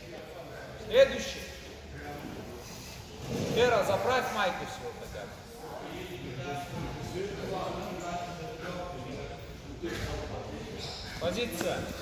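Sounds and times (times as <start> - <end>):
indistinct background talk: 0.0 - 12.0.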